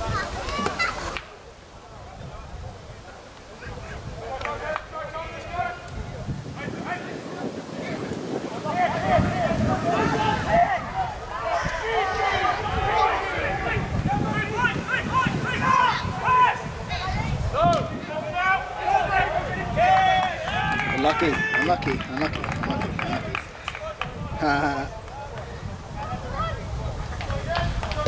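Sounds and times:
wind rumbling on microphone: 0.0 - 28.0
men shouting and calling: 3.6 - 27.9.

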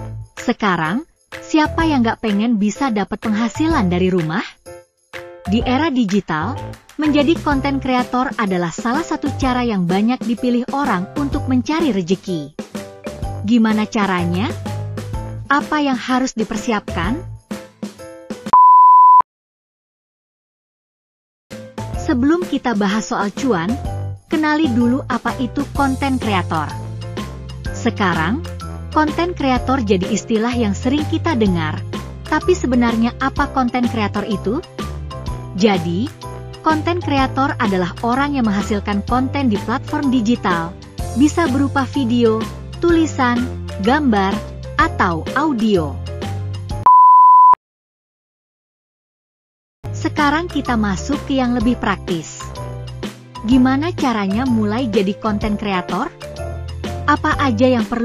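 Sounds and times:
background music: 0.0 - 18.6, 21.5 - 46.9, 49.9 - 58.0
high-pitched electronic beep: 18.5 - 19.2, 46.8 - 47.6.

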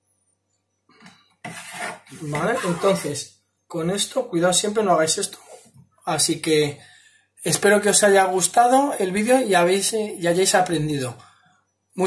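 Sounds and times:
knife scraping cutting board: 1.4 - 3.2.

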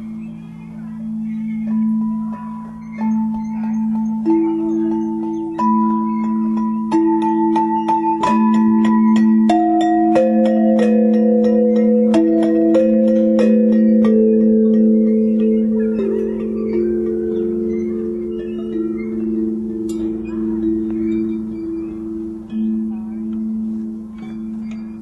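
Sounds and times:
metal pipe chimes ringing: 0.0 - 25.0.

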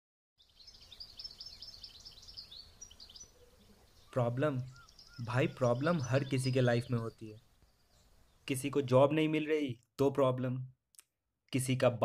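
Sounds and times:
songbirds chirping: 0.4 - 10.6.

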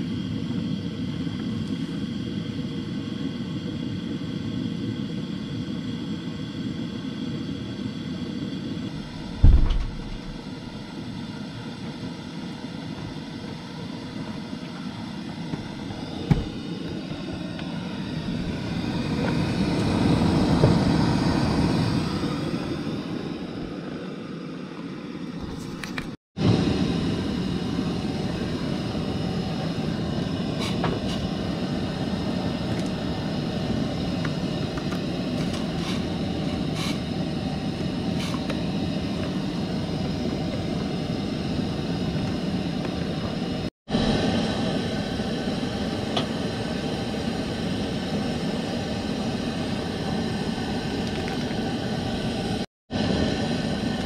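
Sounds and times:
low outdoor rumble: 8.8 - 11.1
louder rumble: 8.9 - 10.9
short knocks: 9.3 - 10.5.

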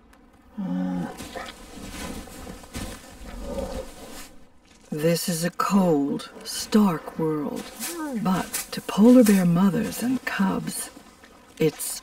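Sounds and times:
bears making low sounds: 0.6 - 4.4
bears snuffling: 0.6 - 11.9
animals scuffling: 0.9 - 12.0.

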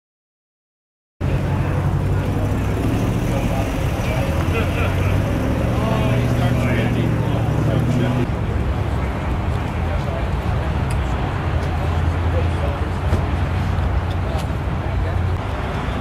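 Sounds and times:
car engine idling: 1.2 - 10.7
people talking: 1.2 - 16.0.

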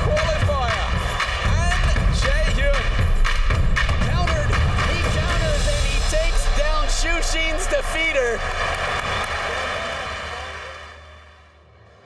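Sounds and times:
crowd cheering and applauding: 0.0 - 12.0.

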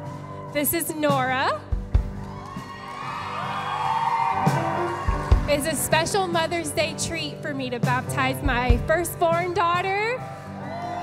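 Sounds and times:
crowd cheering and whooping: 0.0 - 0.7, 2.1 - 5.8, 10.4 - 11.0
soft background music: 0.0 - 11.0
woman speaking: 0.6 - 1.6, 5.5 - 10.2.

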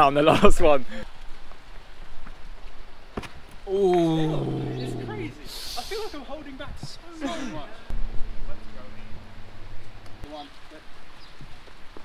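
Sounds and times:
people talking and exclaiming: 3.7 - 6.2
short hiss: 5.5 - 6.3.

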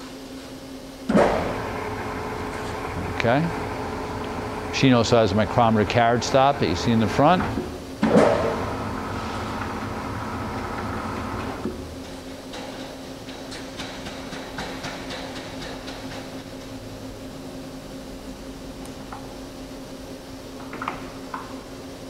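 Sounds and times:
lathe humming: 1.1 - 12.5
lathe whine: 1.2 - 7.9, 8.5 - 11.8.

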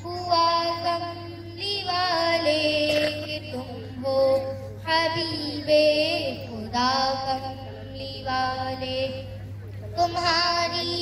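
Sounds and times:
girl singing through a microphone: 0.0 - 11.0.

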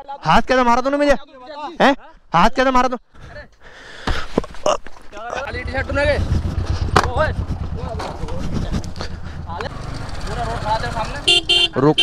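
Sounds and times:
motorcycle engine idling: 5.3 - 11.8.

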